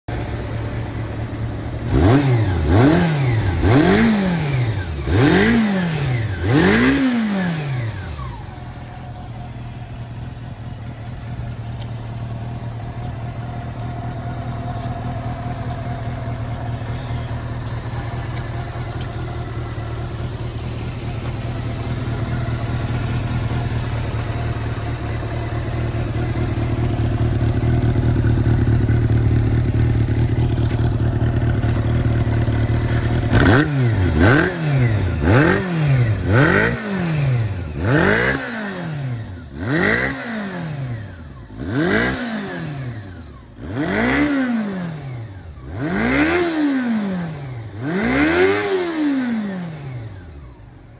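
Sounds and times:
motorcycle engine idling and revving: 0:00.0 - 0:50.9.

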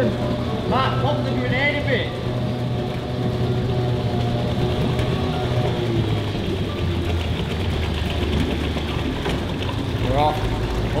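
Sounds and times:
outboard motor idling: 0:00.0 - 0:11.0.

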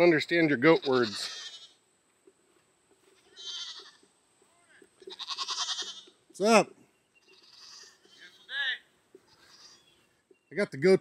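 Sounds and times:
goat bleating: 0:00.6 - 0:01.8, 0:03.1 - 0:06.2, 0:07.2 - 0:10.1.

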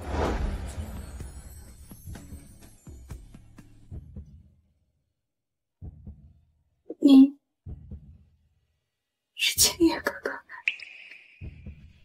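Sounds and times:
woman whispering: 0:09.4 - 0:11.2.

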